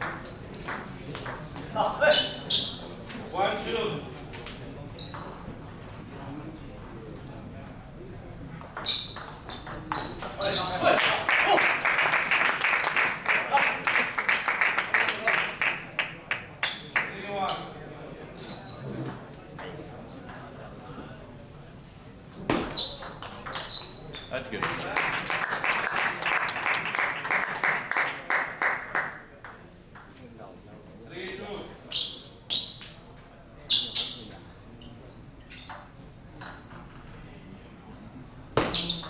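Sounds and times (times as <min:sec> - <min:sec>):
audience clapping: 0:10.9 - 0:17.1, 0:24.4 - 0:29.3.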